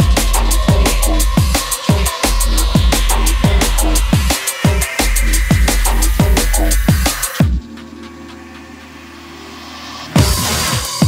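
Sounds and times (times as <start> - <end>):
low synth bass drone: 0.0 - 8.3.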